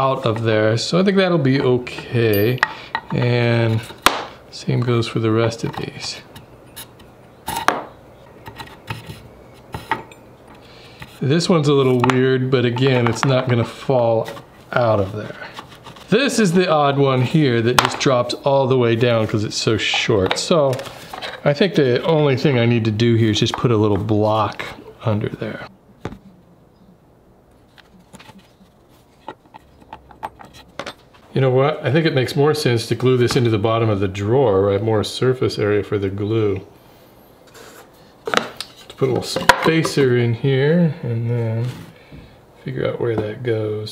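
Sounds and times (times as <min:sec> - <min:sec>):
metal bits clinking in wood: 0:02.3 - 0:03.2, 0:29.5 - 0:31.1.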